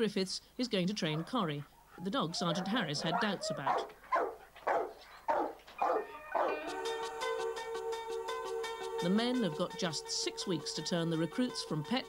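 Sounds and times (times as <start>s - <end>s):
dog barking: 2.4s - 6.6s.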